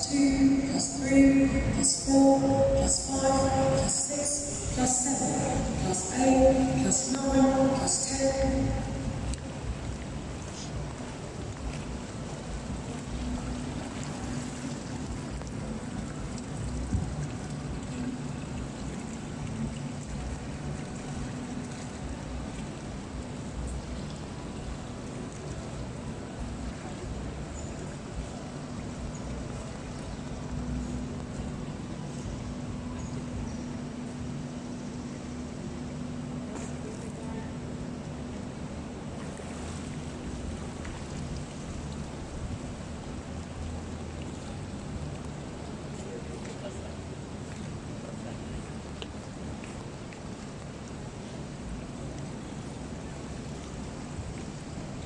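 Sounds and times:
low steady hum: 0:00.0 - 0:55.0
water lapping at pool edge: 0:00.0 - 0:55.0
faint distant voices: 0:36.3 - 0:38.4.

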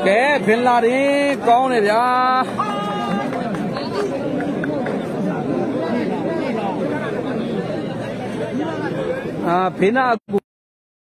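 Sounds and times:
crowd chattering: 0:00.0 - 0:10.4.

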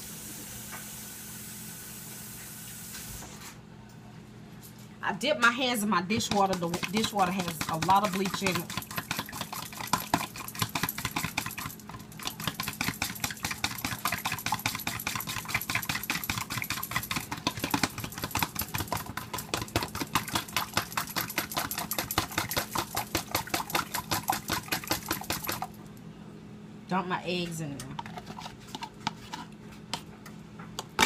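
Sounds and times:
whisk clicking against bowl: 0:06.1 - 0:25.7.

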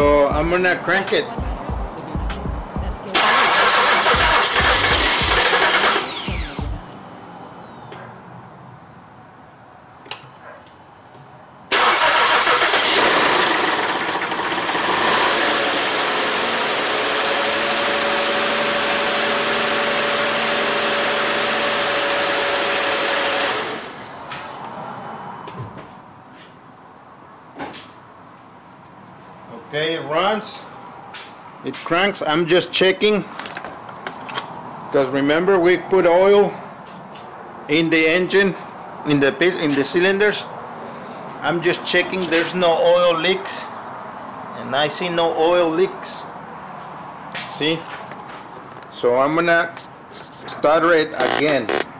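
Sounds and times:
car engine cranking on starter: 0:03.2 - 0:08.0, 0:11.7 - 0:24.0.

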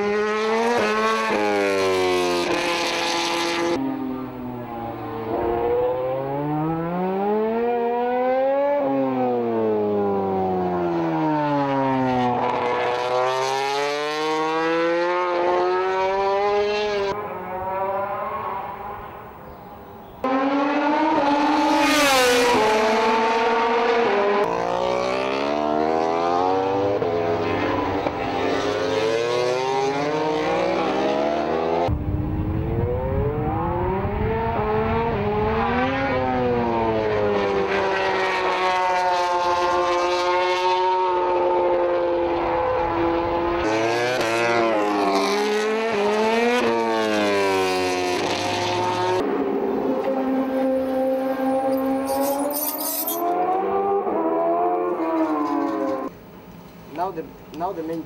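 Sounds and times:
racing motorcycles passing: 0:00.0 - 0:56.2.

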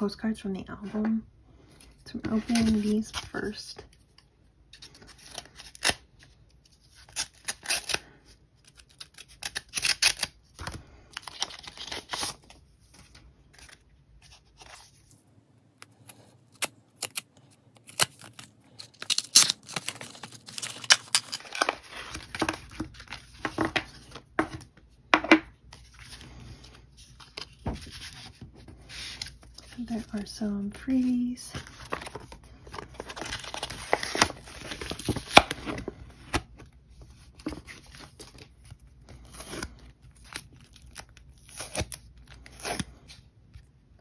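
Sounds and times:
paper tearing and rustling: 0:16.1 - 0:24.3, 0:31.0 - 0:36.5.

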